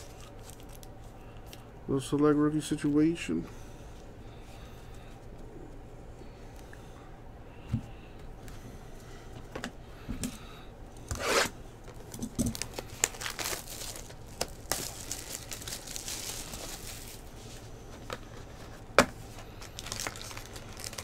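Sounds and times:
plastic wrap crinkling: 0.0 - 1.6, 11.9 - 21.0
plastic wrap ripping: 11.2 - 17.3, 19.6 - 21.0.

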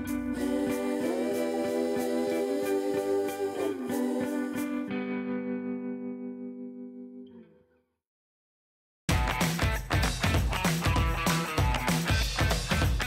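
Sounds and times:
instrumental music: 9.1 - 13.0.

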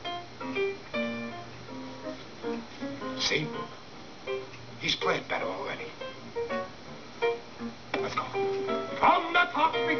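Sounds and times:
piano through television speaker: 0.0 - 9.9.

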